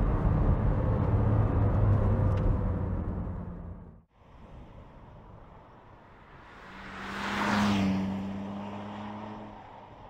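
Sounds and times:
car driving past: 0:06.2 - 0:09.8.

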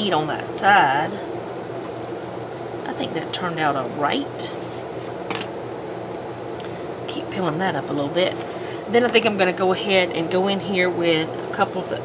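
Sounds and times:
fan-like background hum: 0:00.0 - 0:12.0.

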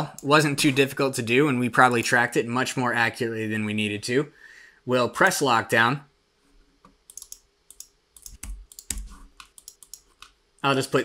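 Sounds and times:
keyboard and mouse clicking: 0:06.8 - 0:10.4.

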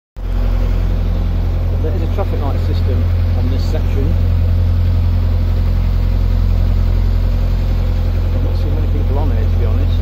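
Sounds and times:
boat engine droning: 0:00.2 - 0:10.0.

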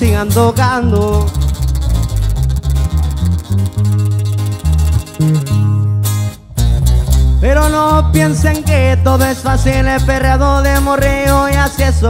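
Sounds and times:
acoustic guitars strumming: 0:00.0 - 0:12.0
bass guitar: 0:00.0 - 0:12.0.

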